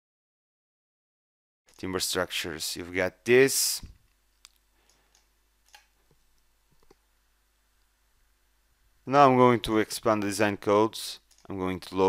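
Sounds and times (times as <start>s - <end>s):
computer mouse clicks: 4.4s - 7.0s.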